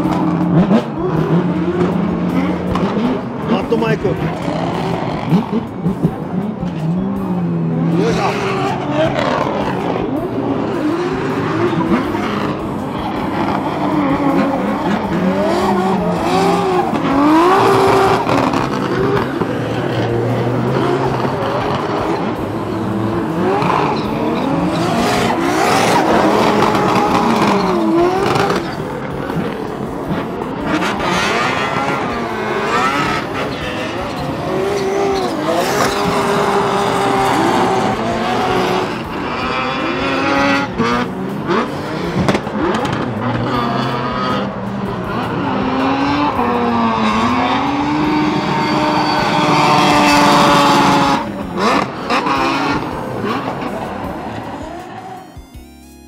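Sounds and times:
tyres screeching: 0:00.0 - 0:55.6
car engines revving high: 0:00.0 - 0:56.0.

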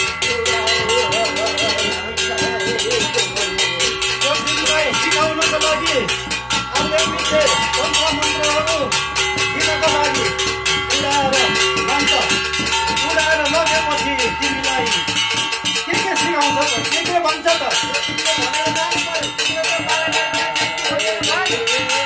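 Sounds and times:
people chanting: 0:00.0 - 0:04.2
brass plates beaten with sticks: 0:00.0 - 0:22.0.

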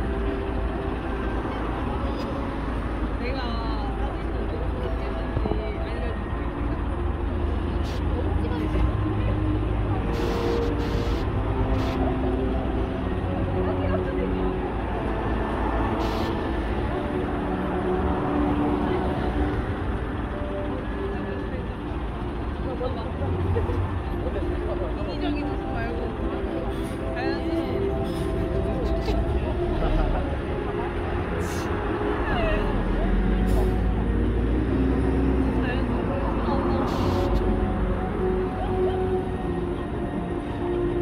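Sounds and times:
indistinct voices: 0:00.0 - 0:41.0
road traffic rumble: 0:00.0 - 0:41.0.

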